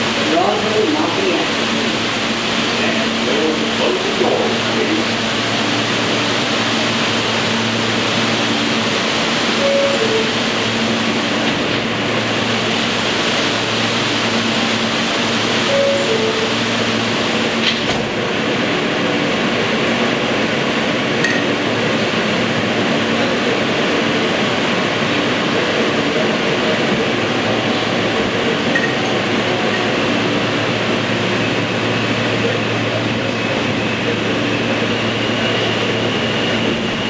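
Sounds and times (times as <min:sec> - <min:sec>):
subway train rail rumble: 0:00.0 - 0:37.0
two-note falling tone: 0:09.6 - 0:10.4, 0:15.7 - 0:16.7.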